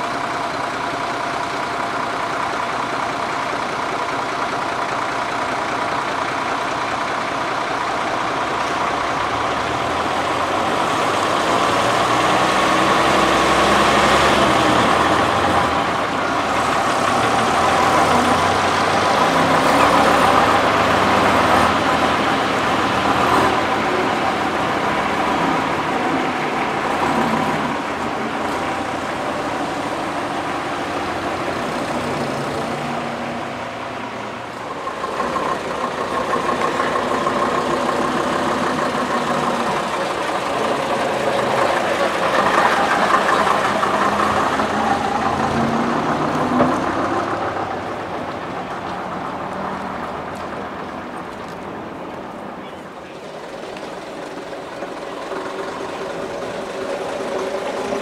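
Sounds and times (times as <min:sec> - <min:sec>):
bus engines running: 0:00.0 - 0:58.0.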